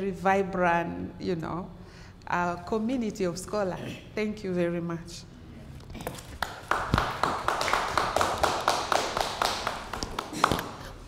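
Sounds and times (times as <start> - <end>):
small audience applauding: 6.3 - 10.9.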